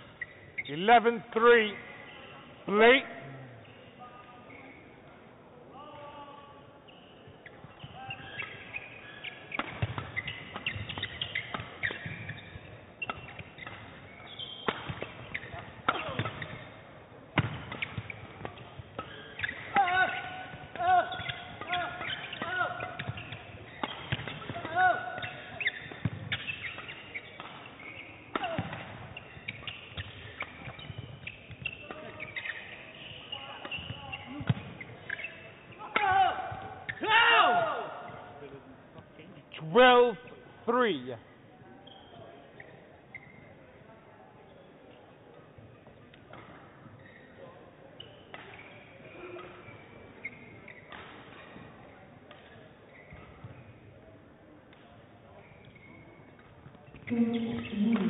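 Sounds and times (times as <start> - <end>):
shoes squeaking on floor: 0.0 - 3.0, 3.6 - 5.0, 6.8 - 37.1, 41.6 - 43.8, 45.6 - 54.0, 54.7 - 58.0
rackets striking shuttlecock: 8.4 - 16.7, 17.4 - 37.0.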